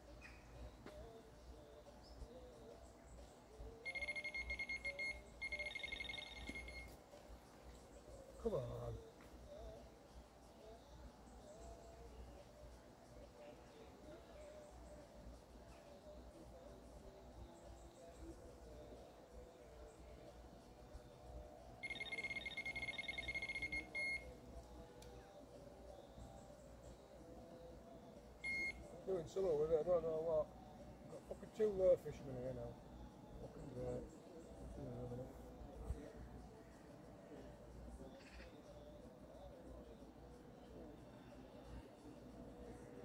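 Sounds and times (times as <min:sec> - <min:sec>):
bite alarm beeping rapidly: 0:03.9 - 0:06.9, 0:21.8 - 0:24.2, 0:28.4 - 0:28.9.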